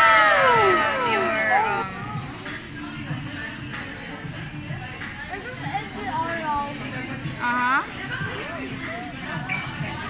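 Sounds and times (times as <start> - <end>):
high drawn-out ooh sound: 0.0 - 1.8.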